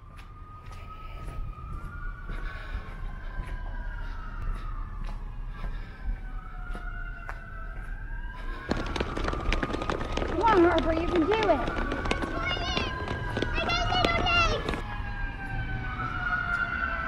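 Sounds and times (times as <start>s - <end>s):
siren wailing: 0.0s - 17.0s.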